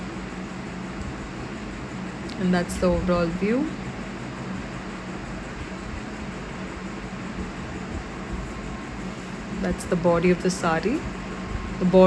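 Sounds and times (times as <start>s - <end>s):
room background hiss and hum: 0.0s - 12.0s.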